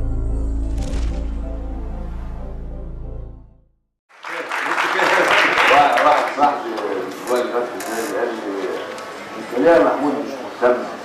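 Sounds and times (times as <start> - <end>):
audience applause: 4.1 - 7.0.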